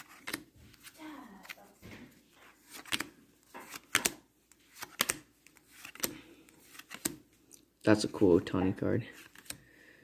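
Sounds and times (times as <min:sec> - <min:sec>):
cards snapping while flipped: 0:00.0 - 0:01.6, 0:02.6 - 0:07.6, 0:09.2 - 0:09.6.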